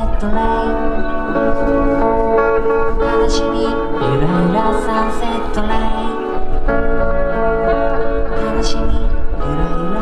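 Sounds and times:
electric guitar chords: 0.0s - 10.0s
person singing: 3.0s - 6.4s, 8.3s - 10.0s.

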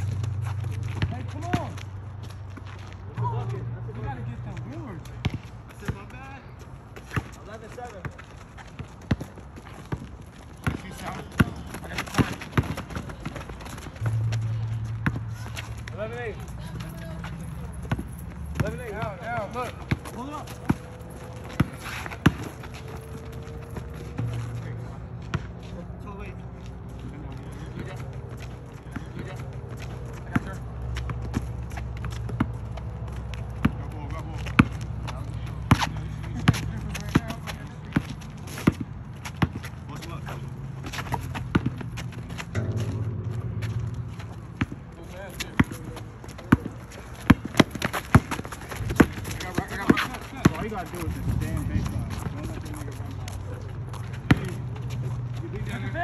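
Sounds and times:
basketball bouncing on asphalt: 0.0s - 55.8s
players' footfalls: 4.0s - 25.8s, 26.5s - 56.0s
low steady hum: 13.7s - 19.1s, 40.5s - 45.3s.

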